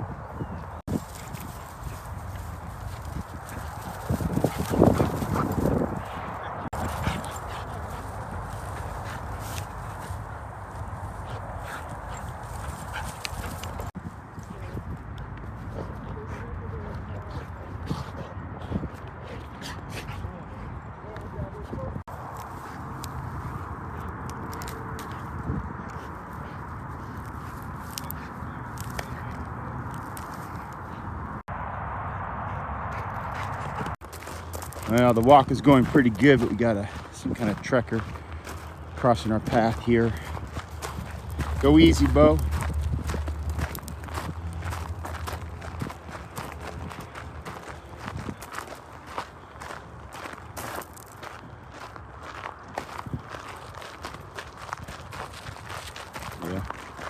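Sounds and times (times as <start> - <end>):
steady outdoor noise: 0.0 - 57.0
footsteps: 32.4 - 57.0.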